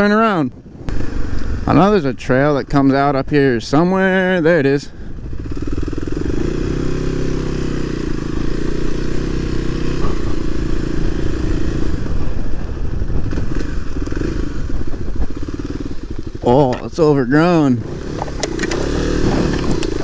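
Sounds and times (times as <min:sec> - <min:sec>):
dirt bike engine running: 0:04.0 - 0:20.0
engine knocks and rattles: 0:09.6 - 0:20.0.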